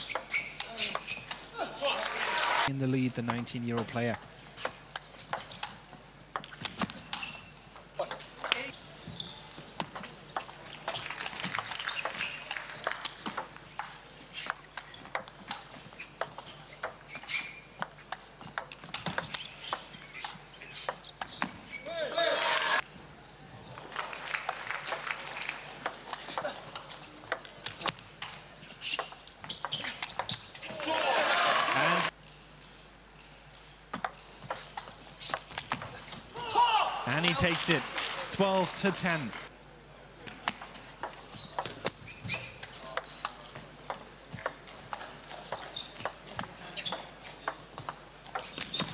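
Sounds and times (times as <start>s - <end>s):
crowd cheering and shouting: 1.8s - 2.7s, 22.0s - 22.8s, 30.8s - 32.1s.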